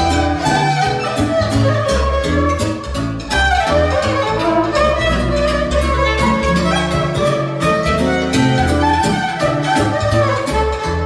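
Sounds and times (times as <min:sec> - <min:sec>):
amplified violin melody: 0:00.0 - 0:11.0
held bass notes: 0:00.0 - 0:11.0
keyboard accompaniment: 0:00.0 - 0:11.0
steady beat: 0:00.0 - 0:11.0.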